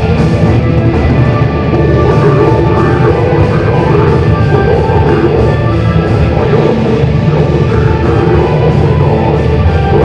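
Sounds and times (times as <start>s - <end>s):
distorted electric guitars: 0.0s - 10.0s
drums: 0.0s - 10.0s.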